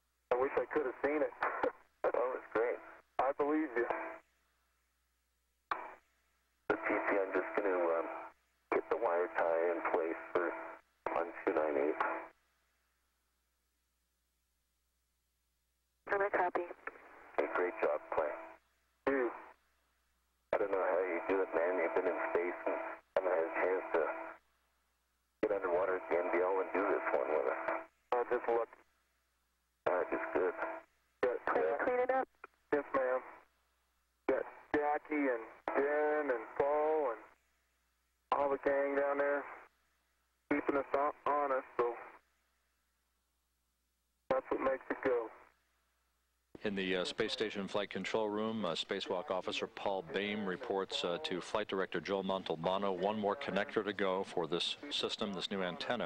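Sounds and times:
radio voice transmissions: 0.3 - 4.2, 6.7 - 12.3, 16.1 - 19.5, 20.5 - 24.4, 25.4 - 28.8, 29.8 - 33.4, 34.3 - 37.4, 38.3 - 39.7, 40.5 - 42.2, 44.3 - 45.5, 46.6 - 56.0.

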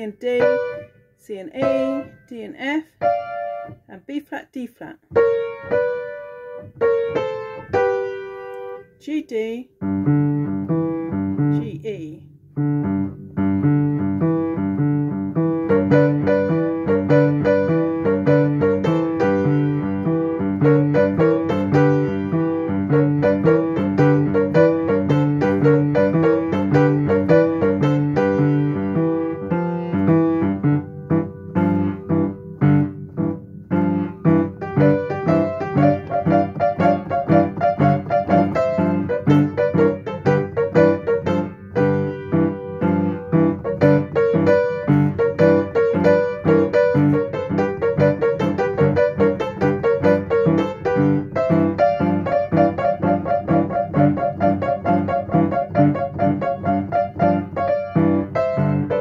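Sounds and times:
upright piano blues boogie: 0.0 - 1.0, 1.6 - 2.2, 2.9 - 3.9, 5.1 - 9.0, 9.8 - 11.7, 12.5 - 59.0.

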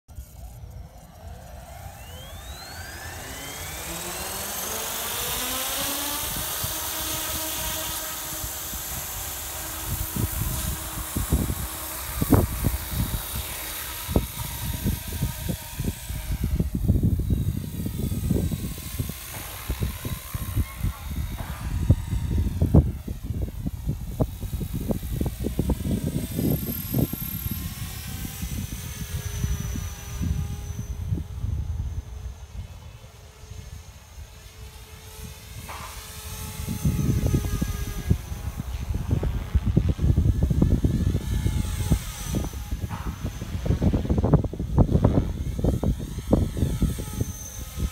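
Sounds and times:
low buffeting noise: 0.1 - 47.9
rc helicopter motor whine: 0.1 - 47.9.

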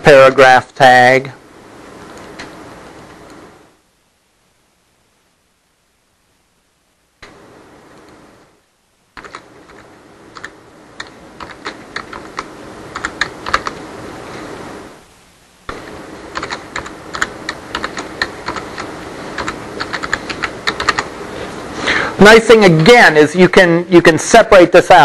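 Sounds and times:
typing on keyboard: 9.2 - 13.8, 16.3 - 21.1.

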